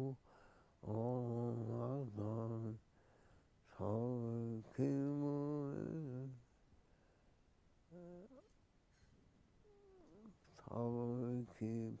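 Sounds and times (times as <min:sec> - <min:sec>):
man humming low note: 0:07.9 - 0:08.4.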